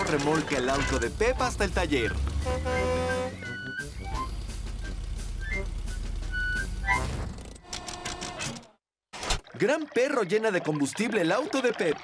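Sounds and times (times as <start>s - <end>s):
cartoon truck engine hum: 0.6s - 8.2s.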